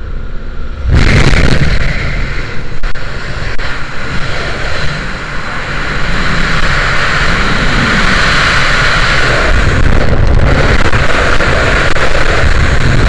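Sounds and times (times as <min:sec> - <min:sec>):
wind roaring over microphone: 0:00.0 - 0:13.0.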